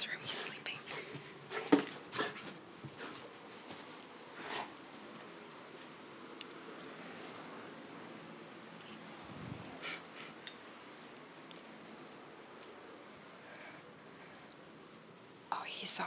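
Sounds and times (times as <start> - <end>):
soft rustling: 0.0 - 6.1
faint steady hiss: 0.0 - 16.0.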